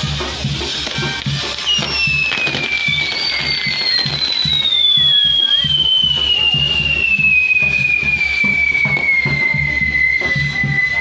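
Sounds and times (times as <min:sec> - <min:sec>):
whistling firework: 0:00.0 - 0:11.0.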